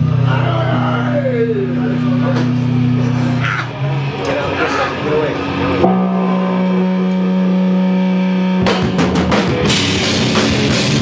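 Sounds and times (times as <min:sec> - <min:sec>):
electric guitar note ringing: 0:00.0 - 0:11.0
rock band playing: 0:00.0 - 0:11.0.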